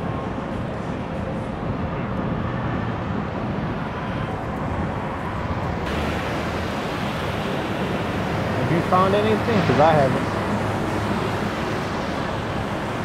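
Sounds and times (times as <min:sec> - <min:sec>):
traffic engines rumbling: 0:00.0 - 0:13.0
tyres hissing on wet road: 0:05.9 - 0:13.0.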